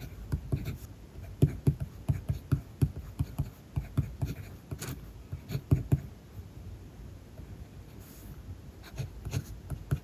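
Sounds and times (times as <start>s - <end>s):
pencil writing on paper: 0.0s - 6.2s, 7.9s - 10.0s.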